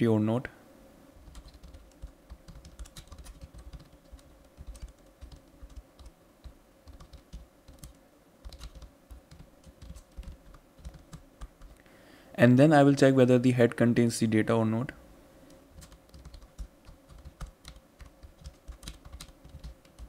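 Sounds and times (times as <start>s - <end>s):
computer keyboard typing: 1.2s - 11.8s, 15.8s - 20.0s.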